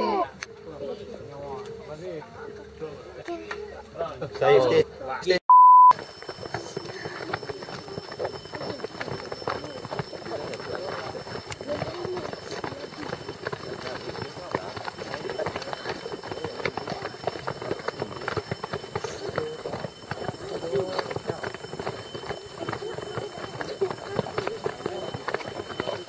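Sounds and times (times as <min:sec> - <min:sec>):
footsteps on paved road: 0:05.9 - 0:26.0
indistinct voices talking: 0:05.9 - 0:26.0.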